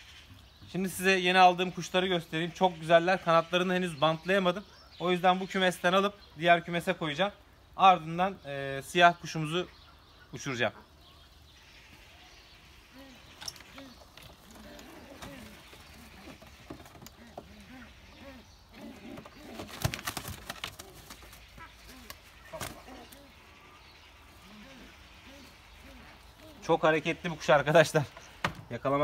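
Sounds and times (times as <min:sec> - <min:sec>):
pigeons cooing: 0:12.0 - 0:29.0
wings flapping and knocking: 0:19.0 - 0:22.9.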